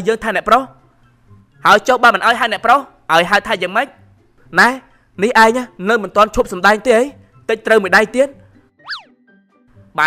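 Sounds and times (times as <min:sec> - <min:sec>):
whistle tone sweeping up and down: 0:08.8 - 0:09.1.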